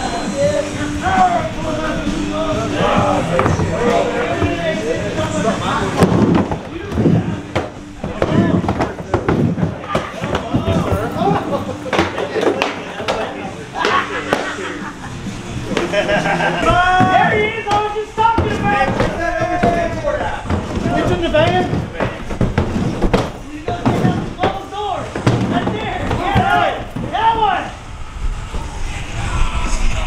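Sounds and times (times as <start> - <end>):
people talking and laughing: 0.0 - 30.0
skateboard wheels rolling: 0.0 - 30.0
skateboard clacking on wooden ramp: 16.6 - 27.4.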